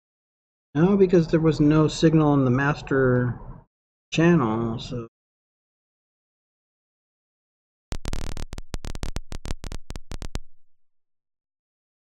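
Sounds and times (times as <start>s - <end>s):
stuttering hissy noise bursts: 7.9s - 10.4s.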